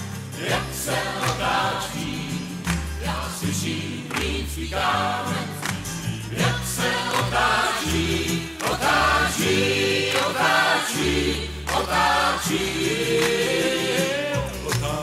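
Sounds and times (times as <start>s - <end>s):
acoustic guitar: 0.0s - 15.0s
mixed voices singing in harmony: 0.0s - 15.0s.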